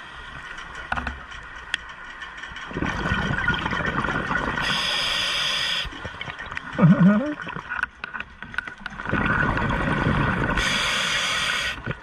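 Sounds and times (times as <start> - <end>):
exhaled bubbles rushing underwater: 2.7 - 5.1, 5.9 - 7.8, 8.8 - 12.0
regulator hiss: 4.6 - 6.0, 10.6 - 11.9.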